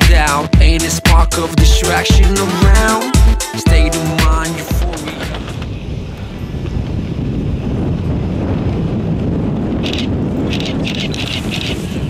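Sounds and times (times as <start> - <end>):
wind buffeting microphone: 4.8 - 12.0.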